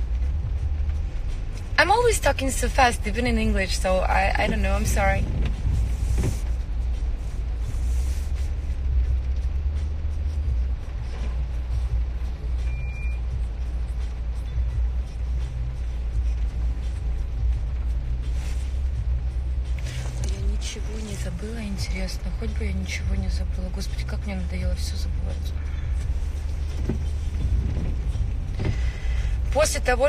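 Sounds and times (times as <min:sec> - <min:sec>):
car interior rumble: 0:00.0 - 0:30.0
faint music: 0:00.0 - 0:30.0
short high beep: 0:12.6 - 0:13.2.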